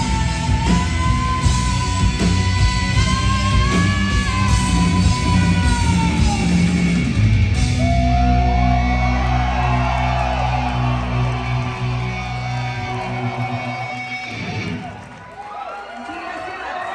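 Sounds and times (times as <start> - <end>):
crowd yelling and cheering: 0.0 - 16.9.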